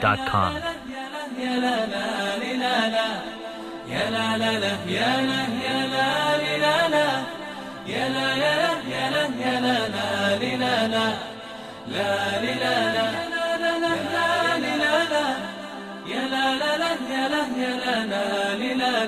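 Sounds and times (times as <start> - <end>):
melodic vocal chant: 0.0 - 19.0.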